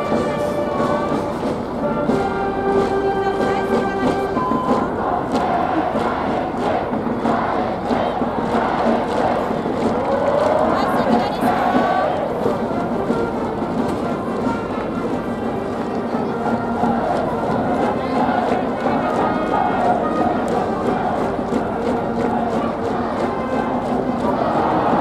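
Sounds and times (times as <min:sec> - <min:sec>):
brass band playing: 0:00.0 - 0:25.0
crowd shouting: 0:04.4 - 0:25.0.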